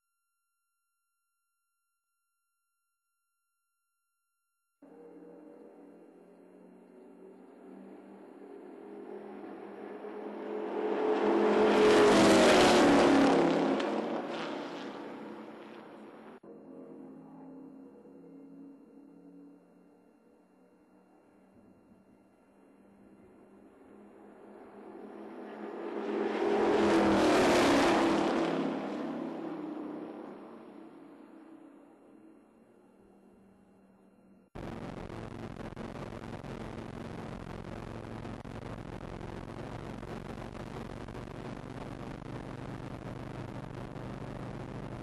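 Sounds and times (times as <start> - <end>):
race cars passing at speed: 4.9 - 19.6, 22.7 - 32.4.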